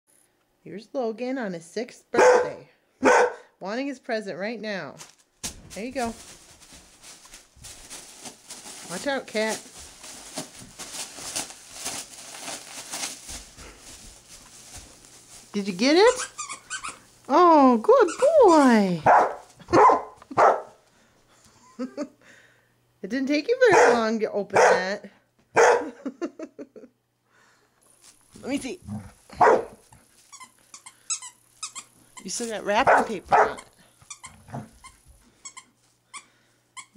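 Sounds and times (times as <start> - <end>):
wrapping paper crinkling and tearing: 5.0 - 17.2
squeaky dog toy: 16.1 - 17.1, 18.0 - 18.8, 30.3 - 32.0, 33.3 - 36.9.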